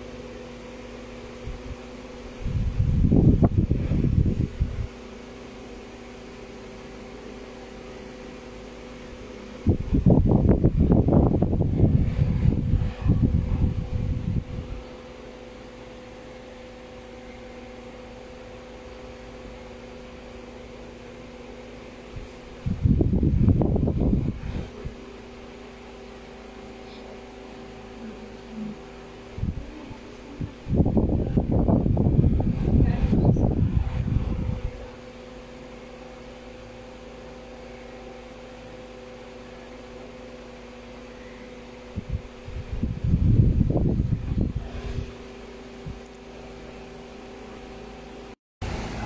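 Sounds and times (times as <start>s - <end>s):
room fan humming: 0.0s - 49.0s
loud low rumbling bursts: 2.4s - 5.0s, 9.6s - 15.0s, 22.1s - 35.7s, 41.9s - 47.6s.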